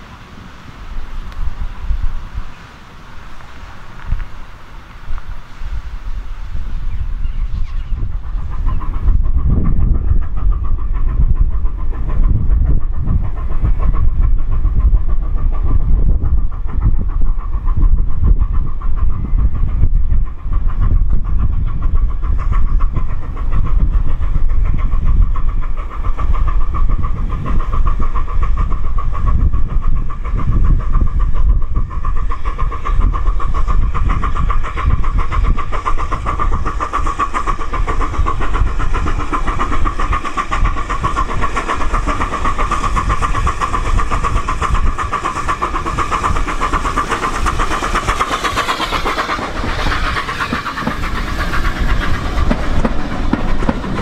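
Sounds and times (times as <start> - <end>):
steam locomotive working: 0.0 - 54.0
train wheels on rails: 0.0 - 54.0.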